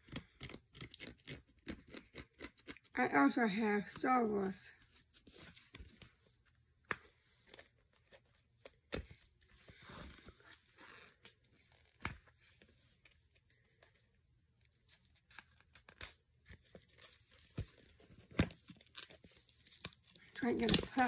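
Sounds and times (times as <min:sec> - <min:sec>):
plastic wrapping tearing: 0:00.0 - 0:03.0, 0:18.2 - 0:21.0
person speaking: 0:03.0 - 0:04.8, 0:20.3 - 0:21.0.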